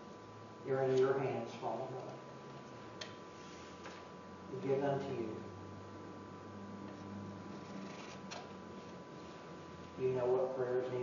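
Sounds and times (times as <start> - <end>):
steady faint hum: 0.0 - 11.0.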